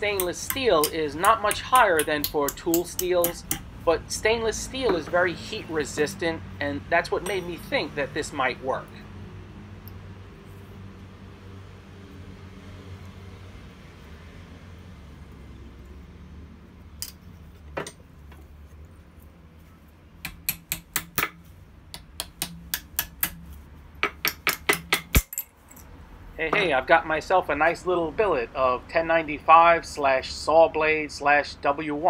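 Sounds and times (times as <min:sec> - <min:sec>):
low steady hum: 0:00.0 - 0:29.0
steel pieces clinking: 0:24.9 - 0:25.9.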